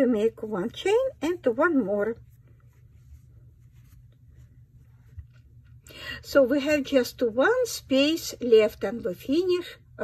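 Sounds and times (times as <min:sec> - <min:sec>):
yarn rustling on crochet hook: 0:00.0 - 0:05.6
low steady hum: 0:00.0 - 0:10.0.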